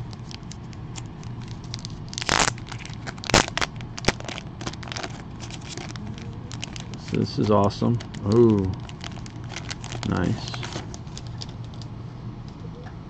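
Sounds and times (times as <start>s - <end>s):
plastic bag crinkling: 0.0s - 11.9s.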